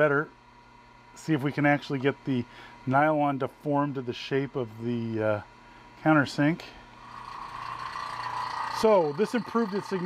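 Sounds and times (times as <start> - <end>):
vacuum pump running: 0.0 - 10.0.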